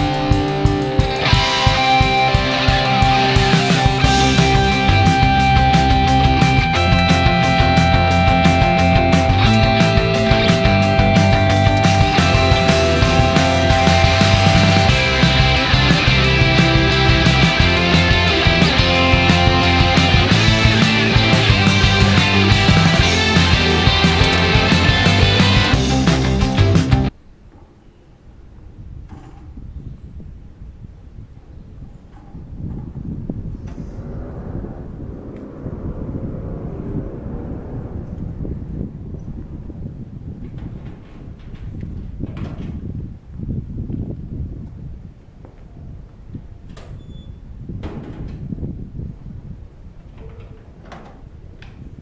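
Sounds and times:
metal gate rumbling along track: 0.0 - 29.8, 31.9 - 43.2, 49.9 - 52.0.

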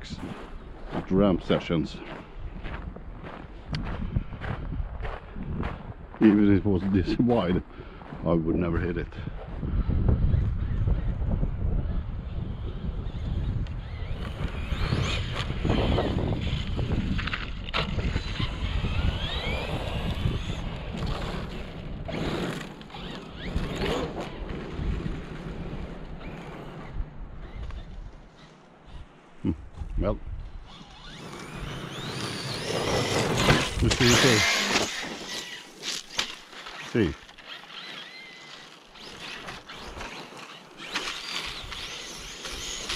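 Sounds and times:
wind buffeting microphone: 0.0 - 35.6
rc truck motor whine: 10.1 - 29.0, 30.5 - 42.9
tyres driving over gravel: 14.3 - 26.9, 30.7 - 42.9.

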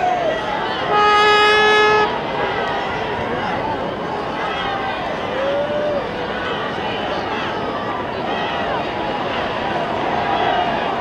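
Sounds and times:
large crowd noise: 0.0 - 11.0
steady horn note: 0.9 - 2.2.

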